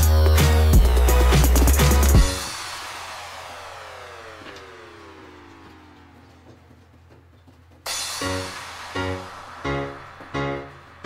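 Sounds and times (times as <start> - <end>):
music with falling pitch glide: 7.9 - 11.0.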